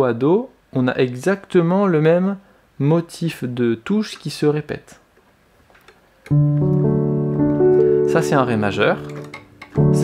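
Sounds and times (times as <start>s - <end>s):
piano chord: 6.3s - 10.0s.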